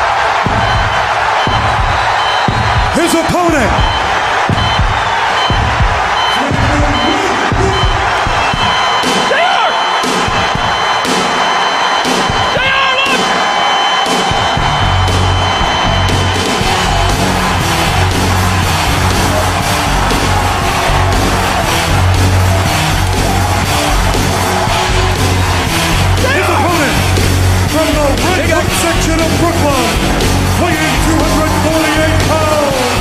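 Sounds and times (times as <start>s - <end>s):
arena crowd cheering and yelling: 0.0s - 33.0s
faint regular beat: 0.0s - 33.0s
heavy rock entrance music: 0.0s - 33.0s.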